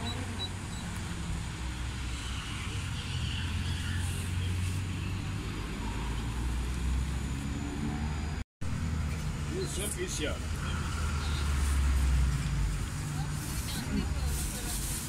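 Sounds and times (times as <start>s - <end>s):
motor vehicle rumble: 0.0s - 15.0s
road noise: 0.0s - 15.0s.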